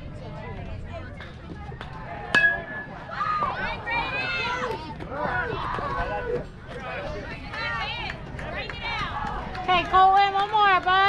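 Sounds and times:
spectators yelling: 2.2s - 6.4s
metal bat hitting ball: 2.3s - 3.1s.

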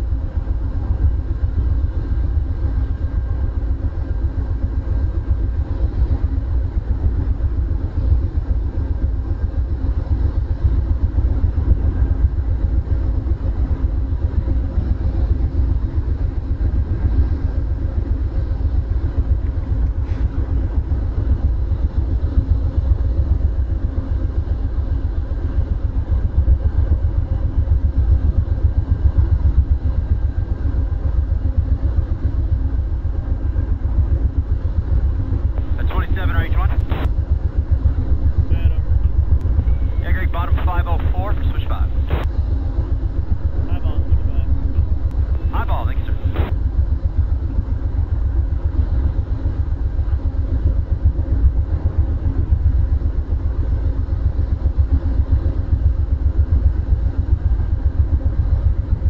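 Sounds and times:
faint hum: 0.0s - 59.0s
train idling rumble: 26.8s - 46.5s.

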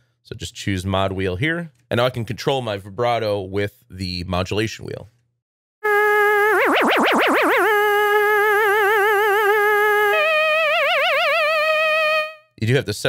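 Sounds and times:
sampled voice imitating a trumpet: 5.8s - 12.5s.

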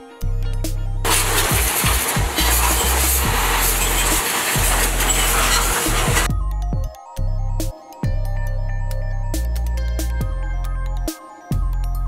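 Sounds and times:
background music: 0.0s - 12.0s
pressure washer jet hissing: 1.1s - 6.3s.

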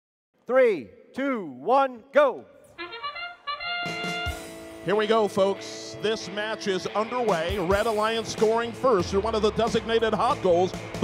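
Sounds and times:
trumpet-like bugle call: 2.8s - 4.7s.

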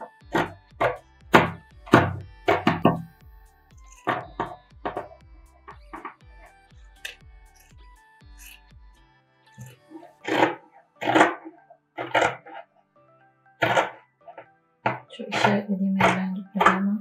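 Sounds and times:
scissors cutting fabric: 3.8s - 4.3s, 7.0s - 8.7s, 9.6s - 11.4s, 14.9s - 16.8s.

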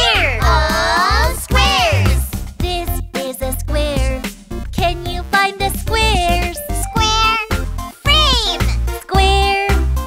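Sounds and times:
high cartoon voice singing: 0.0s - 4.2s, 4.8s - 9.8s
upbeat backing music: 0.0s - 10.0s.

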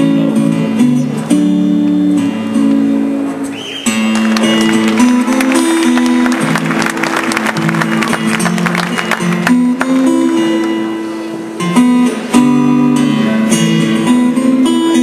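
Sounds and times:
acoustic guitars strumming: 0.0s - 15.0s.

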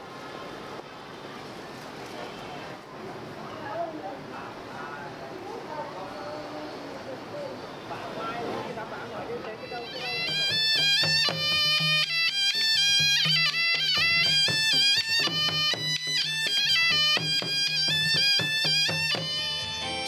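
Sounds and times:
shawm playing ornamented melody: 9.1s - 20.0s
hand-beaten barrel drums: 9.7s - 20.0s.

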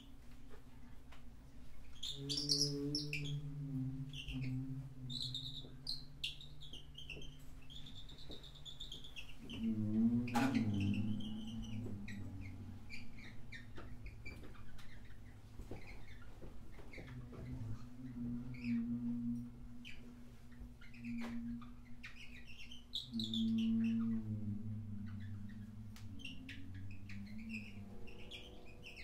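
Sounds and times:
high chirping squeaks: 1.8s - 3.4s, 4.1s - 18.8s, 19.8s - 24.3s, 25.0s - 29.0s
swooping low sound: 9.5s - 14.2s, 23.1s - 28.3s.

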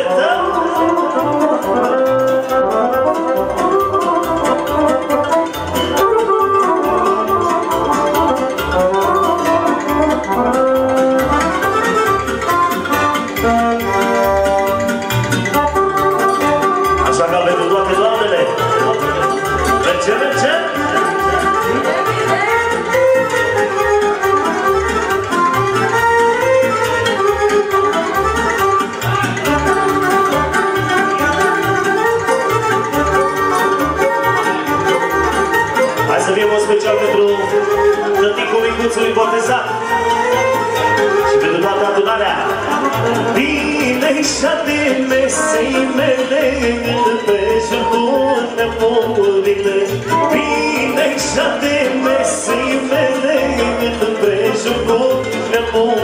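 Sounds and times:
accordion: 0.0s - 56.0s
live band playing dance music: 0.0s - 56.0s.

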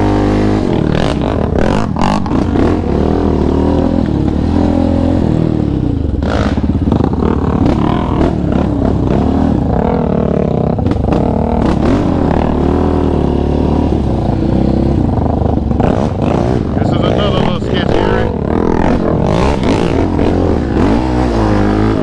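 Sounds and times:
quad engine revving: 0.0s - 22.0s.

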